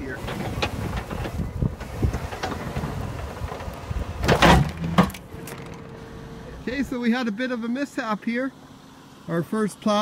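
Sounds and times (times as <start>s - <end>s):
sharp clunk: 4.2s - 5.9s.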